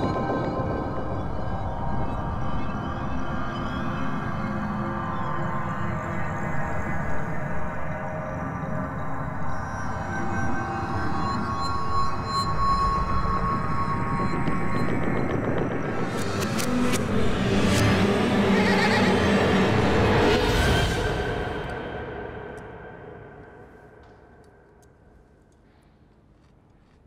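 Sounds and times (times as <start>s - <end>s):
droning dramatic score: 0.0s - 25.7s.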